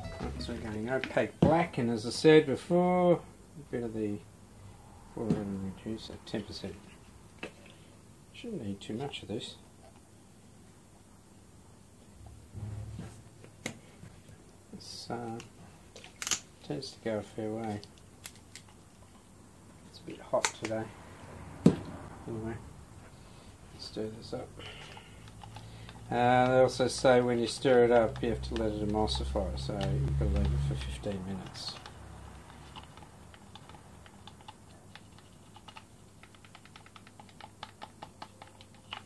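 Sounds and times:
low room hum: 0.0 - 39.0.

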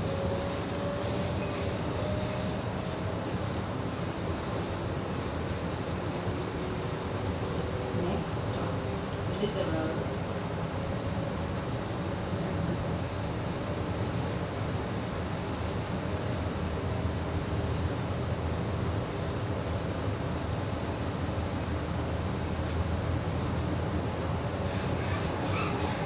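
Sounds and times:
train running gear rumble: 0.0 - 26.0.

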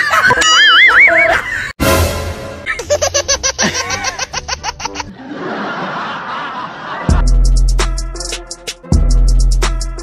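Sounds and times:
group of people laughing: 0.0 - 1.8, 2.6 - 7.2.

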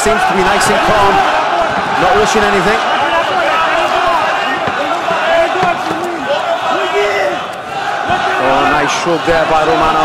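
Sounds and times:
arena crowd shouting and chanting: 0.0 - 10.0.

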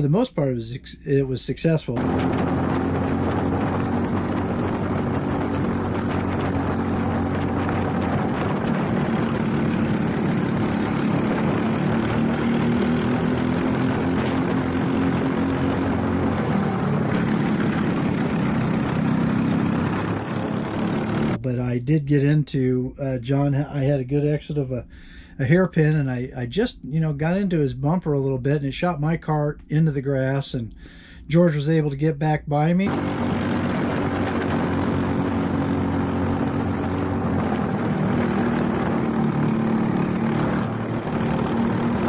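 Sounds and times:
kart engine at racing speed: 2.0 - 21.4, 32.9 - 42.0.

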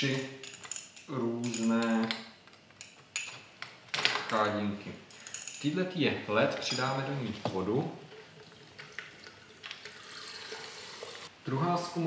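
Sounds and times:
laboratory glassware clinking: 6.6 - 7.2.

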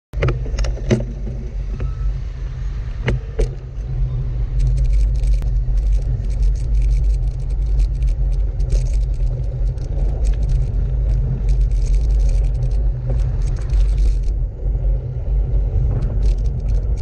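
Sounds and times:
wind rumble on microphone: 0.2 - 17.0
tyres crackling on gravel: 3.2 - 17.0.

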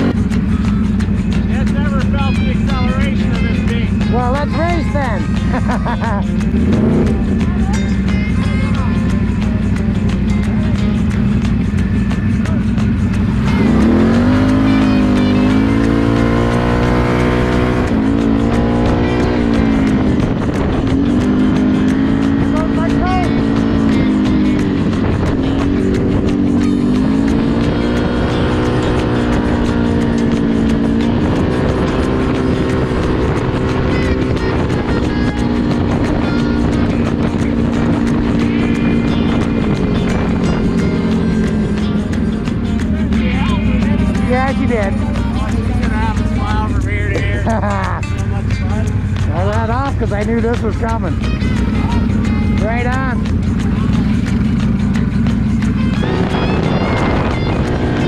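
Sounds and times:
atv engine revving: 0.0 - 58.0.

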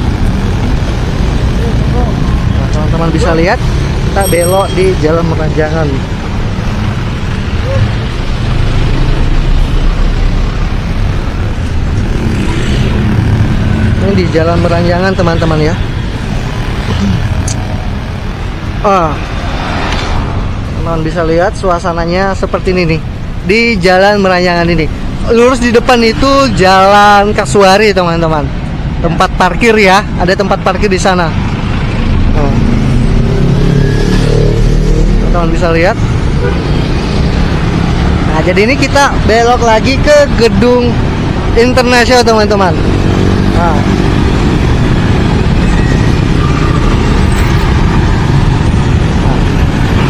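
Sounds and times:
low rumble of road and wind: 0.0 - 50.0
motorbikes passing: 0.0 - 50.0
car passing: 5.0 - 21.6.

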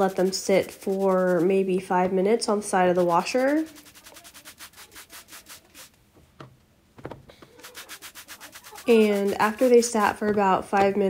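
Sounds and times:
hand rubbing cloth pad: 0.0 - 6.0, 7.4 - 10.1.

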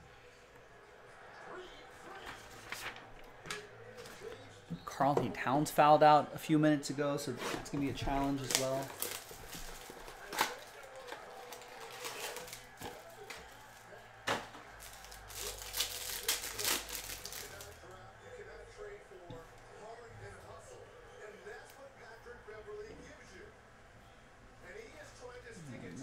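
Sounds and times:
plastic wrapper crinkling and tearing: 8.3 - 13.8, 14.8 - 17.8.

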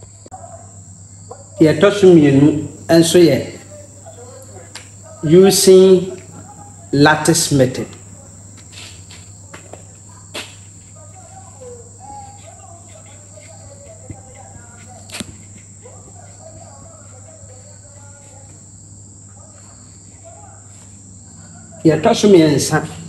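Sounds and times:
steady high-pitched whine: 0.0 - 23.0.

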